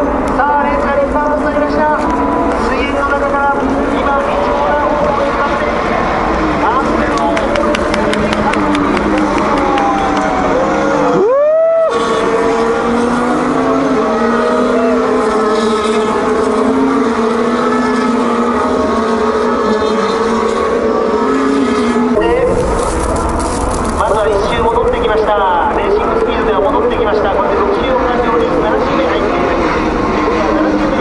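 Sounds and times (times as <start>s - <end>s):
racing car engines passing: 0.0s - 31.0s.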